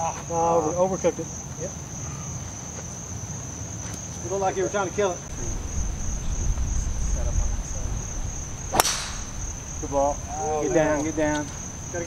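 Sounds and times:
insects droning: 0:00.0 - 0:12.0
golf club striking ball: 0:08.4 - 0:10.2.

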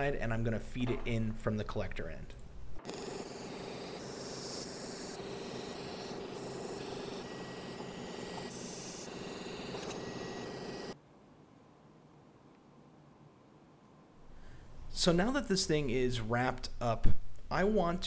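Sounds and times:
welding arc buzzing hiss: 0:02.8 - 0:11.0
faint room hiss: 0:11.0 - 0:18.0.

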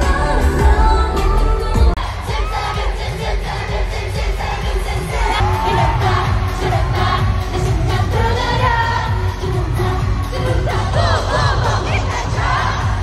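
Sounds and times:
amplified pop music with heavy bass: 0:00.0 - 0:13.0
crowd cheering and singing along: 0:00.0 - 0:13.0.

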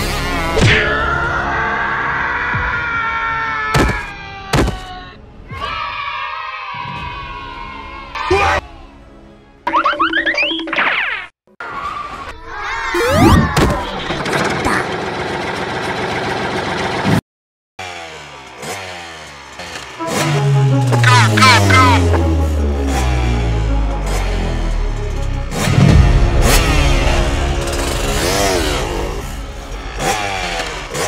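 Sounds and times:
cartoon dirt bike engine revving: 0:12.9 - 0:17.2, 0:17.8 - 0:31.0
background music: 0:19.9 - 0:31.0.

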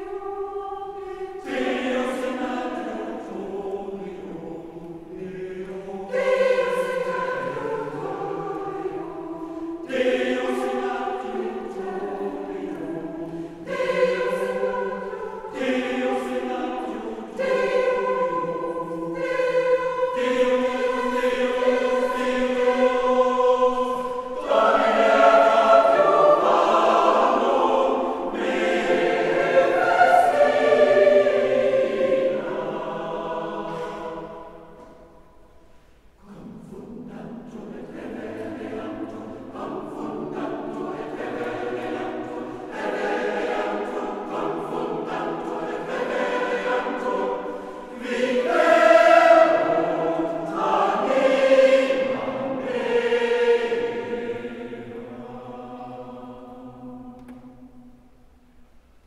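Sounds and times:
church choir singing a cappella: 0:00.0 - 0:59.0.

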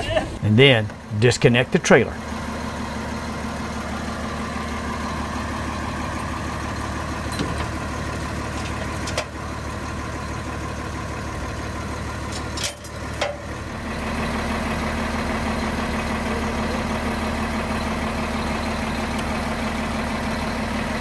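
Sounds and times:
diesel engine idling: 0:00.0 - 0:21.0.

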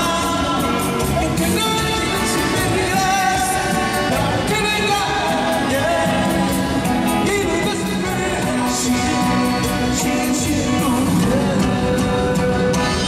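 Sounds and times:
accordion: 0:00.0 - 0:13.0
drums: 0:00.0 - 0:13.0
person singing: 0:00.0 - 0:13.0.

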